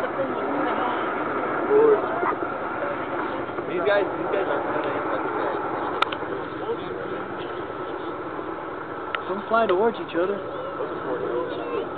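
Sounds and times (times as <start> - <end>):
steady outdoor noise: 0.0 - 11.9.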